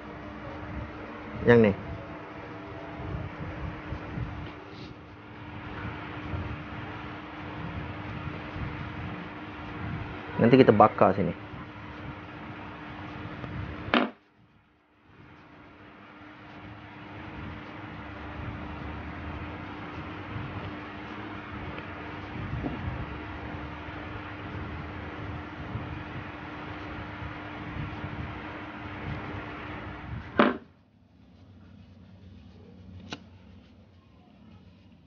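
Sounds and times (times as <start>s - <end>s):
low hum and hiss: 0.0s - 35.0s.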